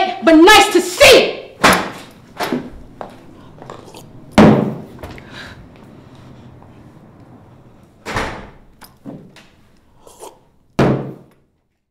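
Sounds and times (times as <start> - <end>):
bangs in a room: 1.6 - 2.8, 4.1 - 5.2, 10.8 - 11.4.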